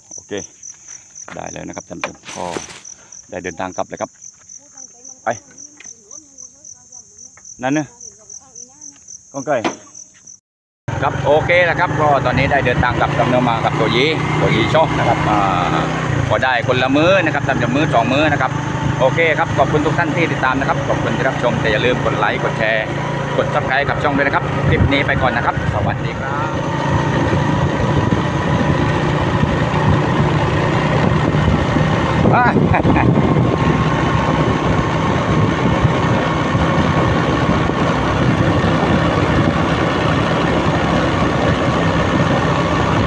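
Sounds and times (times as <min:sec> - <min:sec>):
motorcycle engine running: 0:00.0 - 0:09.0, 0:10.9 - 0:43.0
insect chirping: 0:00.0 - 0:10.4
road noise: 0:00.0 - 0:43.0
wind noise: 0:24.4 - 0:43.0.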